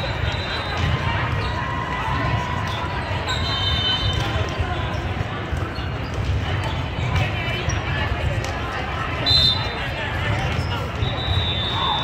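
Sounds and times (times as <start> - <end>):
many voices in a hall: 0.0 - 12.0
balls struck and bouncing: 0.1 - 12.0
high whistle-like tone: 11.0 - 12.0.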